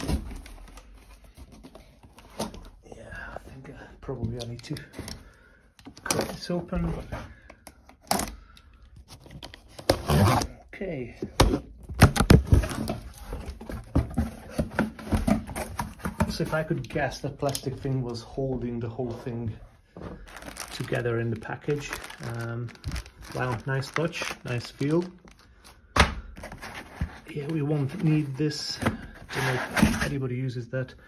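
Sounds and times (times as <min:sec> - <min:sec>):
cardboard rustling and scraping: 0:00.0 - 0:02.8, 0:11.2 - 0:25.4, 0:26.4 - 0:30.2.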